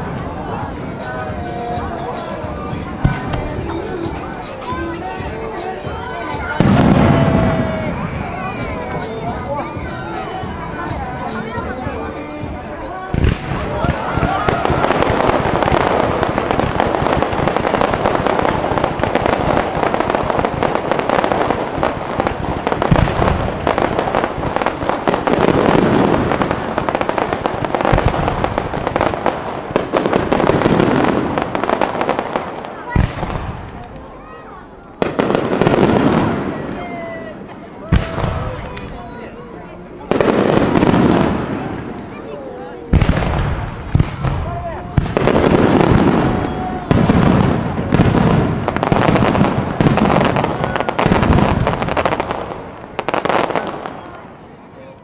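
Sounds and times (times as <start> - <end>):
fireworks crackling and popping: 0.0 - 55.0
fireworks sharp bangs: 1.3 - 10.7, 12.4 - 34.0, 35.0 - 39.0, 40.0 - 54.5.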